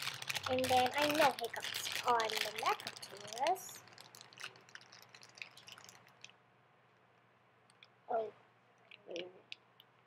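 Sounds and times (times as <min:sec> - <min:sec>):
plastic wrapper crinkling: 0:00.0 - 0:06.4.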